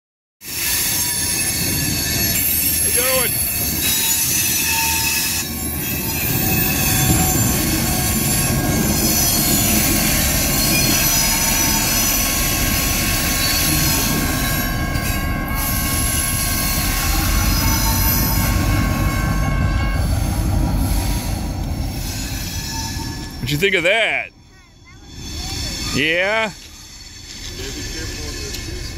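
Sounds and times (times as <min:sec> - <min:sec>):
wheels squealing against rail: 0:00.4 - 0:28.9
locomotive engine rumble: 0:01.4 - 0:28.9.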